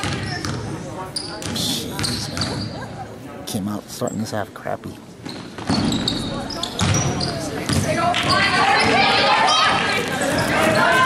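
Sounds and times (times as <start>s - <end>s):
sneaker squeaks on hardwood: 0.0s - 2.8s, 5.2s - 9.1s
voices of players and spectators: 0.0s - 11.0s
basketball thump: 7.7s - 9.0s.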